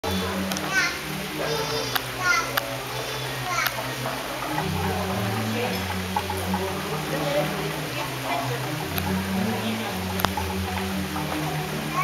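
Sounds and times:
gamelan playing: 0:00.0 - 0:12.0
high voices calling out: 0:00.0 - 0:12.0.

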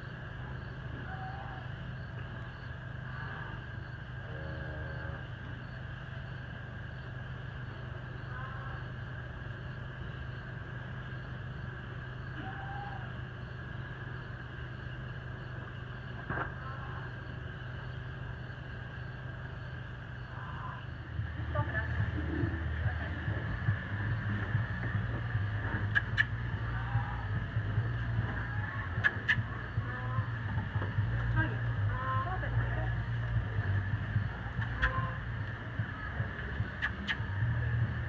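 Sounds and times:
steady low hum: 0:00.0 - 0:38.0
cow mooing: 0:04.3 - 0:05.3.

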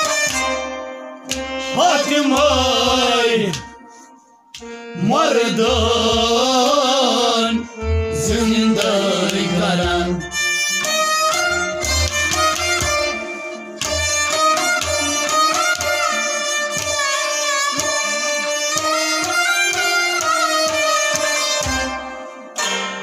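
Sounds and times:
melody instrument playing: 0:07.5 - 0:23.0
hand drum beats: 0:10.9 - 0:22.0.

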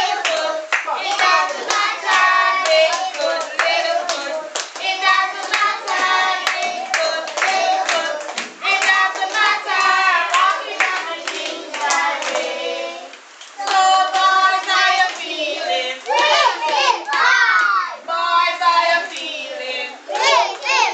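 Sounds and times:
class singing together: 0:00.0 - 0:20.9.

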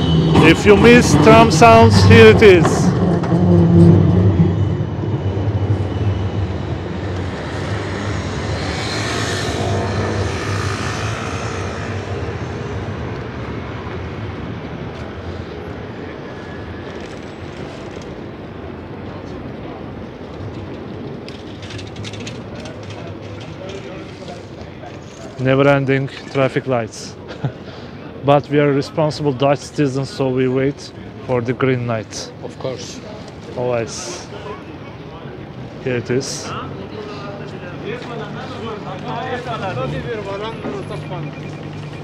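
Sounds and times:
tram passing on rails: 0:00.0 - 0:25.4, 0:26.2 - 0:42.0
street traffic noise: 0:00.0 - 0:42.0.

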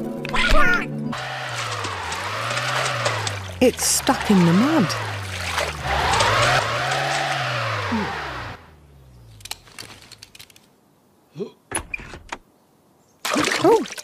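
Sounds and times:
car engine revving: 0:01.1 - 0:10.3
wheels spinning in mud: 0:01.2 - 0:10.6.

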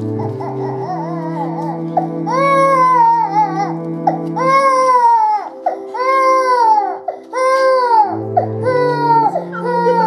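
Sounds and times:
background music of low notes: 0:00.0 - 0:10.0
person wailing: 0:09.4 - 0:10.0.

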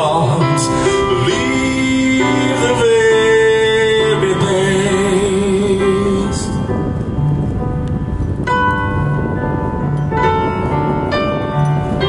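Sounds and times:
grand piano playing: 0:00.0 - 0:12.0.

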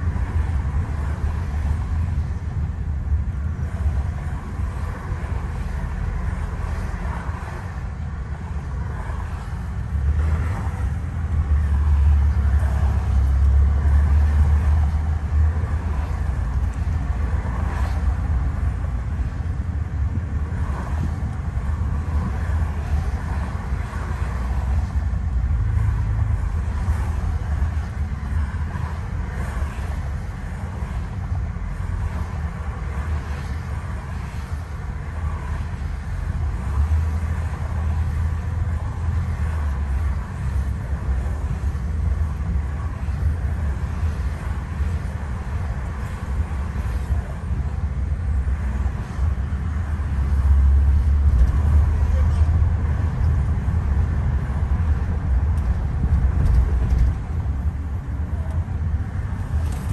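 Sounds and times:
car cabin road rumble: 0:00.0 - 0:59.9.

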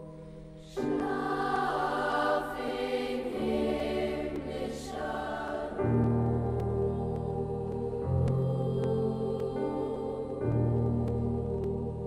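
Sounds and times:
girls' choir singing: 0:00.6 - 0:12.0.

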